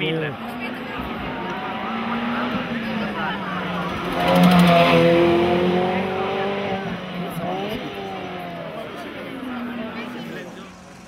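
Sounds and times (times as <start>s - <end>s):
race car engine at high revs: 0.0s - 11.0s.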